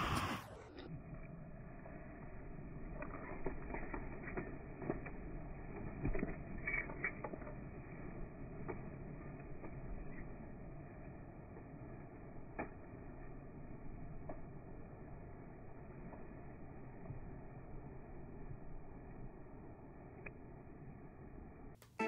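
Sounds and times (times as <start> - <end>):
steady rumble: 0.0 - 5.7
slowed pigeon wing flaps: 1.9 - 17.6.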